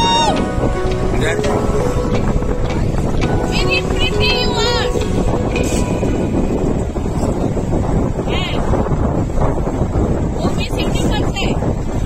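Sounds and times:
boat engine running: 0.0s - 12.0s
wind noise on microphone: 0.0s - 12.0s.

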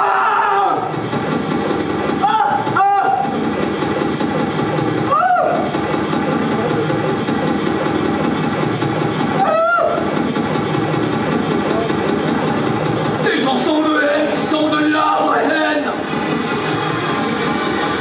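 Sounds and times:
harsh synthesizer noise: 0.0s - 18.0s.

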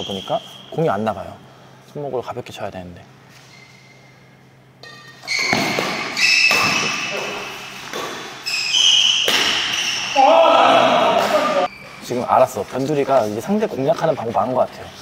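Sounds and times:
shoes squeaking on court floor: 3.2s - 12.9s
racket striking shuttlecock: 4.8s - 10.0s.

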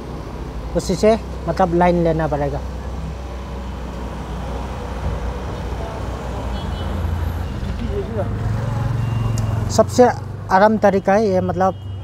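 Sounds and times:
street traffic: 0.0s - 12.0s
vehicle engine humming: 0.0s - 12.0s.

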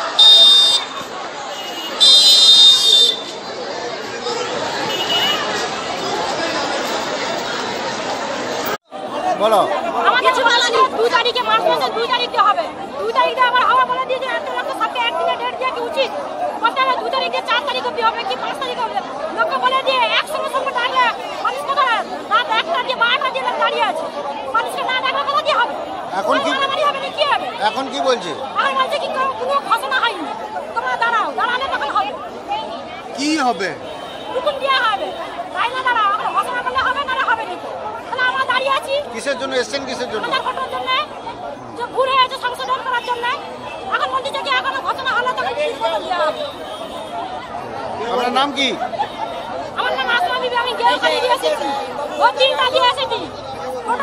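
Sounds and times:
crowd babble of voices: 0.0s - 54.0s
woman speaking animatedly: 41.8s - 46.3s, 49.8s - 53.3s.

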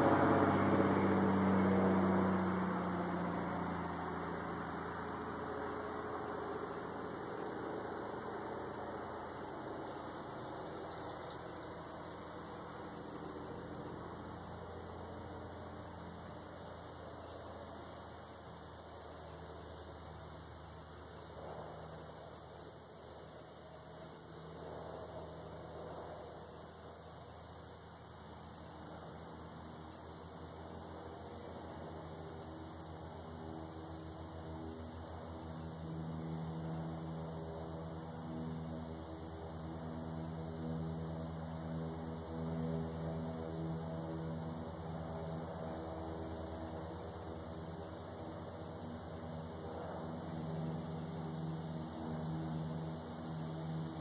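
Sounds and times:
low engine hum: 0.0s - 17.9s, 28.8s - 54.0s
crickets trilling: 0.0s - 54.0s
insect chirping: 0.0s - 54.0s.

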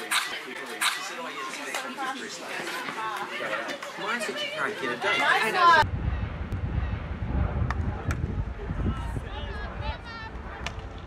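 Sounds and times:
wind rumbling on microphone: 5.8s - 11.0s.

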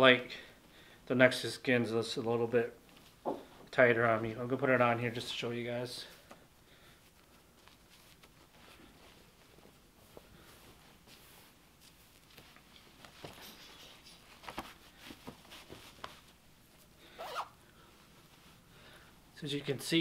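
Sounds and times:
fabric rustling: 6.9s - 19.2s
zipper drawn up: 17.1s - 17.6s.

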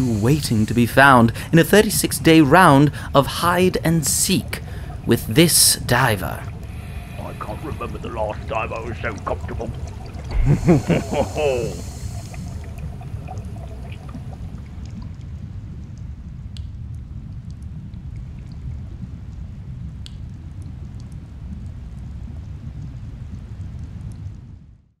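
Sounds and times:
underwater low rumble: 2.3s - 24.9s
faint clicks: 14.8s - 17.7s, 20.0s - 24.5s.

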